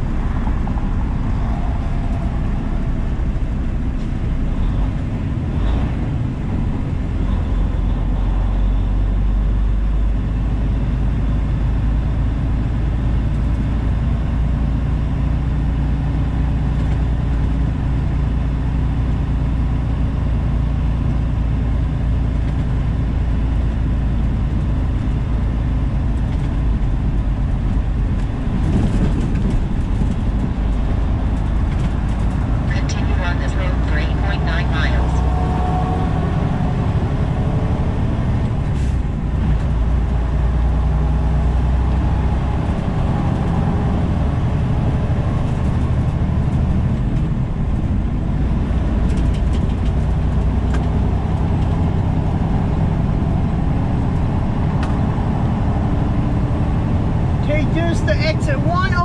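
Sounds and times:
truck engine and road drone: 0.0s - 59.0s.

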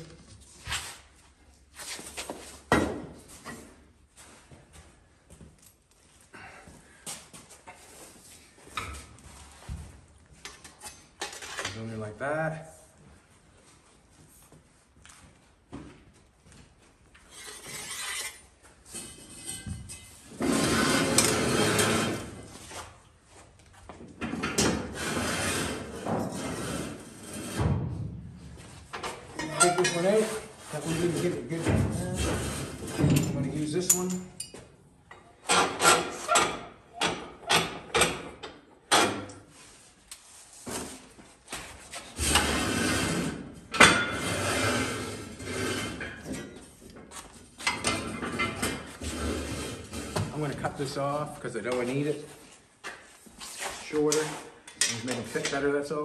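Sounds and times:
metal clanking and scraping: 10.4s - 11.9s, 17.2s - 22.5s, 28.9s - 39.3s, 42.1s - 46.7s, 47.6s - 50.7s.

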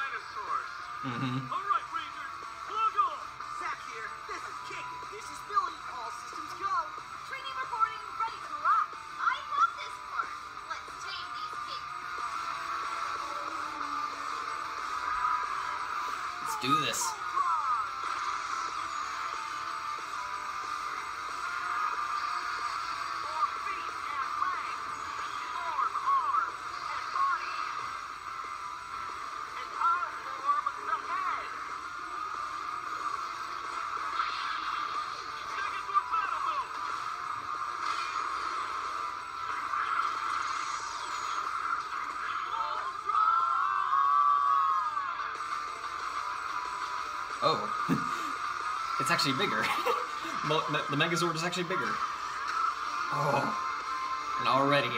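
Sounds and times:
cartoon soundtrack music with voices: 0.0s - 54.9s.

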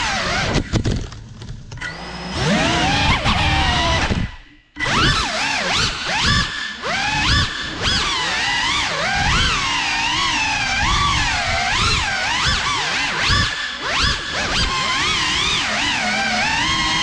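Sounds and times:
drone motors whining: 0.0s - 0.6s, 1.7s - 17.0s.

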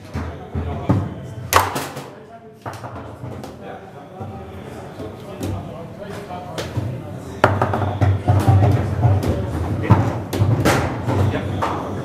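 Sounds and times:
foosball ball struck sharply: 1.6s - 2.2s.

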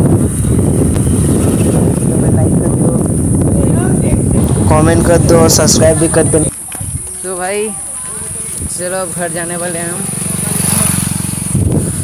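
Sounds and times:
pulsing low riding rumble: 0.0s - 7.1s, 8.2s - 12.0s
insects droning: 0.1s - 11.6s.

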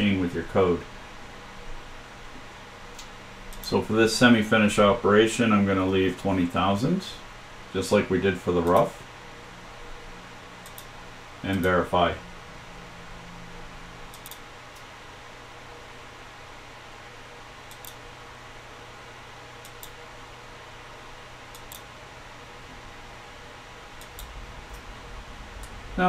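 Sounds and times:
steady hiss with low hum: 0.0s - 26.0s
computer mouse clicks: 10.6s - 10.9s, 14.1s - 14.9s, 17.7s - 18.0s, 19.6s - 20.0s, 21.5s - 21.9s, 24.0s - 24.3s.

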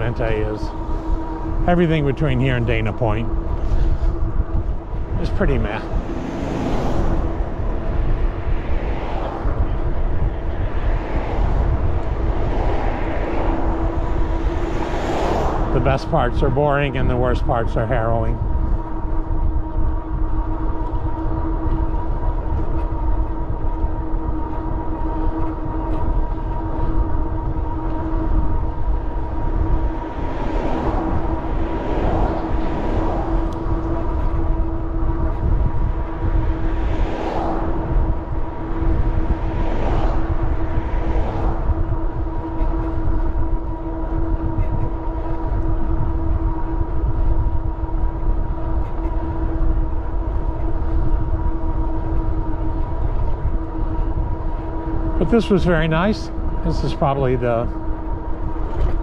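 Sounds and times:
cars passing: 0.0s - 59.0s
road noise: 0.0s - 59.0s
steady motor whine: 0.0s - 59.0s
wind rumble: 0.0s - 59.0s.

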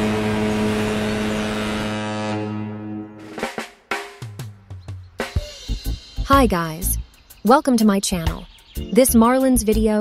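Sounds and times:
ship's horn blast: 0.0s - 3.4s.

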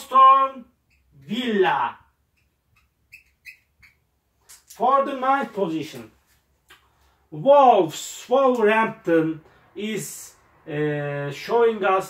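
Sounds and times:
marker squeaking on board: 0.8s - 1.2s, 2.2s - 4.8s.

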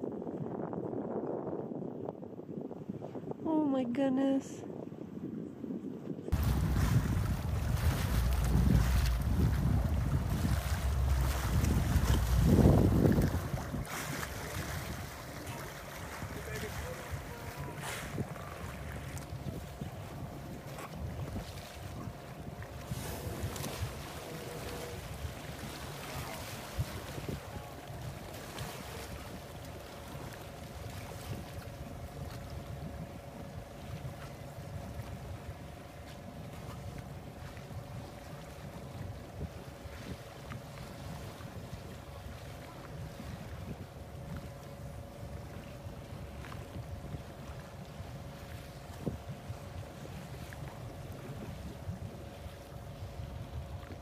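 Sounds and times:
wind on microphone: 0.0s - 54.0s
sea water sloshing: 6.3s - 54.0s
boat engine idling: 6.4s - 36.3s.

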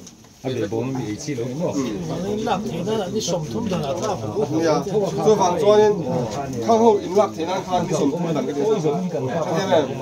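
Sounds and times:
man talking: 0.4s - 10.0s.

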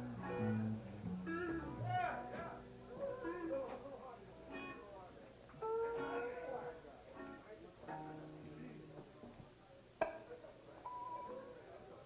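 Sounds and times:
plucked string note: 0.0s - 2.9s.

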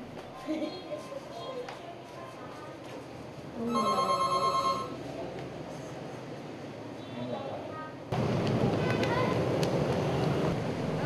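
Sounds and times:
telephone ringing: 3.7s - 5.0s.

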